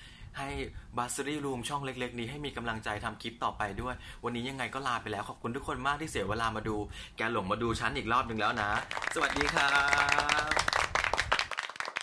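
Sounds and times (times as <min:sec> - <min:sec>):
applause: 0:08.3 - 0:12.0
person saying goodbye: 0:09.3 - 0:10.7.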